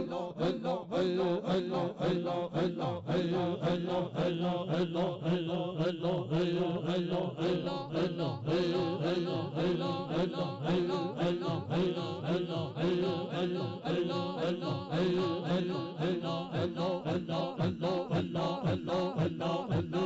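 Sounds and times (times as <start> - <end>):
men chanting in rhythm: 0.0 - 20.0.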